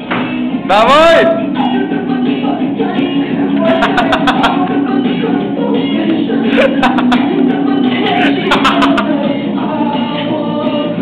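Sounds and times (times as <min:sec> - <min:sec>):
latin music with guitar and singing: 0:00.0 - 0:11.0.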